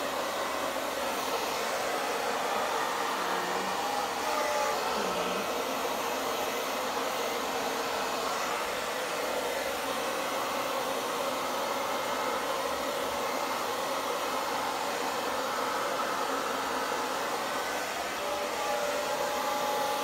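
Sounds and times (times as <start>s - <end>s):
hair dryer running: 0.0s - 20.0s.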